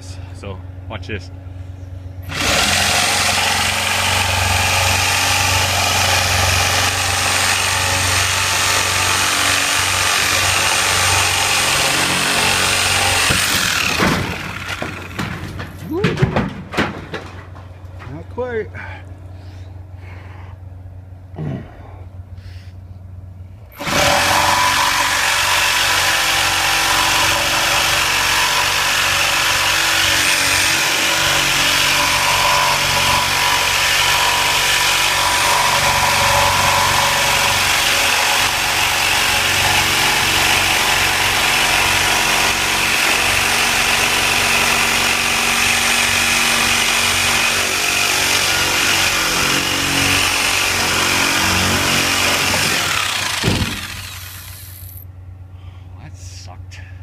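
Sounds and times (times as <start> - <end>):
reciprocating saw cutting wood: 2.2 - 15.4, 23.7 - 55.0.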